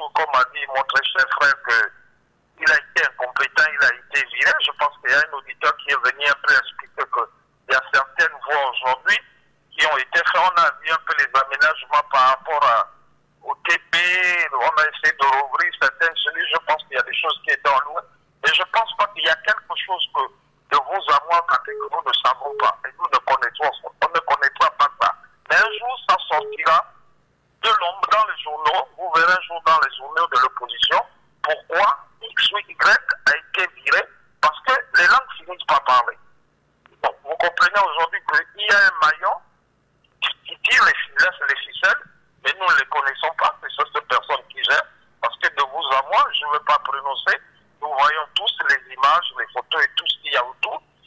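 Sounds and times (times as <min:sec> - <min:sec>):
person speaking over telephone: 0:00.0 - 0:02.0, 0:02.6 - 0:26.9, 0:27.6 - 0:36.2, 0:36.9 - 0:39.5, 0:40.1 - 0:50.9
faint telephone line hum: 0:00.0 - 0:51.0.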